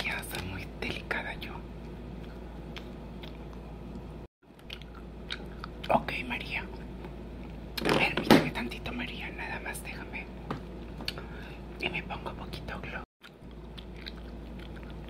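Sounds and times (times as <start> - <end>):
soft whispering: 0.0 - 1.7, 5.9 - 6.8, 8.5 - 10.3, 11.4 - 13.1.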